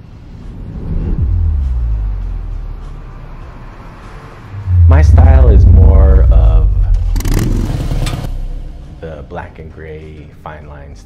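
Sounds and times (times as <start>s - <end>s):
motorcycle engine revving: 4.6s - 8.3s.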